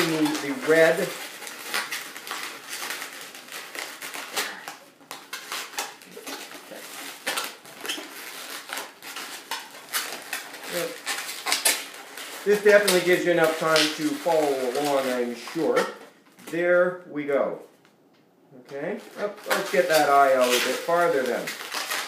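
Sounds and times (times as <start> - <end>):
balloons squeaking and rubbing: 0.0 - 16.6, 18.8 - 22.0.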